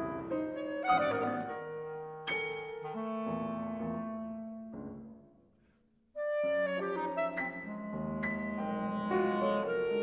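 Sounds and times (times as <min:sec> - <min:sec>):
clarinet playing: 0:00.0 - 0:04.8, 0:06.2 - 0:10.0.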